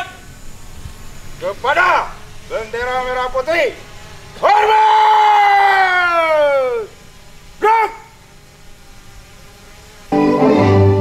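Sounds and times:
person shouting commands: 4.4 - 6.9, 7.6 - 8.2
electronic organ music: 10.1 - 11.0.

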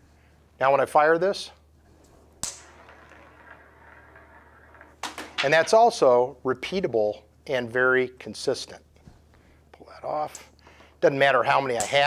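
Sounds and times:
steel ball rattling along rail: 2.4 - 6.0.

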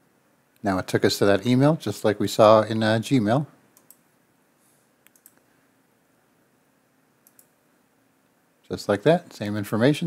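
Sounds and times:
computer mouse clicks: 3.8 - 4.0, 5.0 - 5.5, 7.2 - 7.6.

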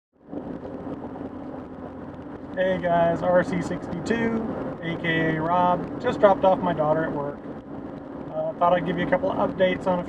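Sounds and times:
car road and engine noise: 0.1 - 10.0.

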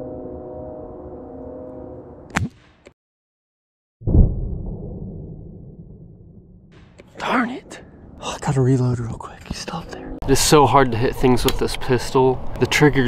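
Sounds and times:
low hum: 0.0 - 2.5, 4.0 - 11.3
pellet pistol shot: 2.3 - 2.8
low rumble: 4.0 - 10.4.

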